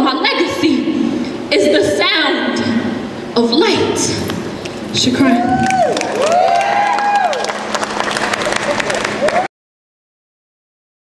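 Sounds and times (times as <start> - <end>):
shouted whoops: 5.2 - 7.6, 9.2 - 9.5
audience clapping and cheering: 5.3 - 9.5.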